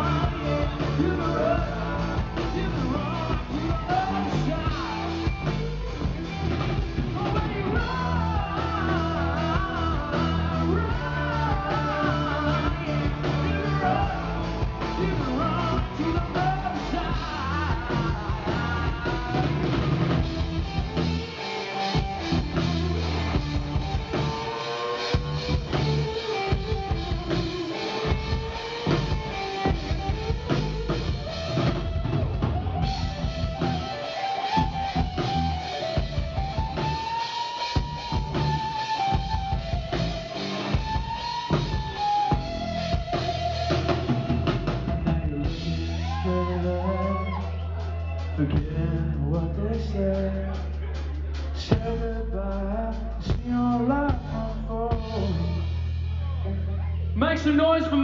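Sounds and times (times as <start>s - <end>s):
drum kit: 0.0s - 56.7s
bass guitar: 0.0s - 58.0s
electric guitars: 0.0s - 58.0s.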